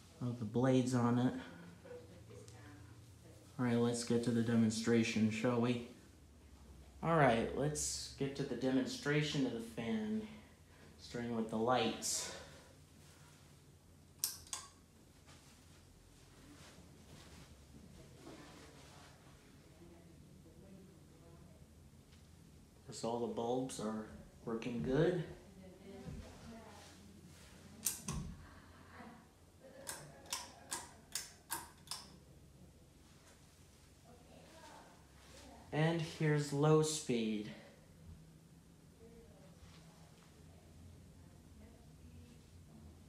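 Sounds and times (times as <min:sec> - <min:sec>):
pull-chain light switch clicking: 0:14.2 - 0:14.8, 0:27.8 - 0:28.2, 0:29.9 - 0:32.1.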